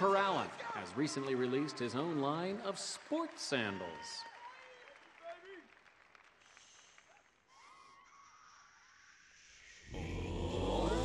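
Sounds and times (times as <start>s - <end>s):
audience applause and cheers: 0.0s - 8.4s
male a cappella group singing: 9.8s - 11.0s.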